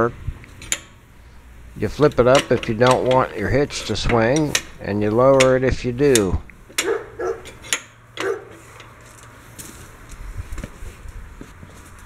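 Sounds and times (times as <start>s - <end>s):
metal hitch clinking and knocking: 0.6s - 1.0s, 1.9s - 9.3s.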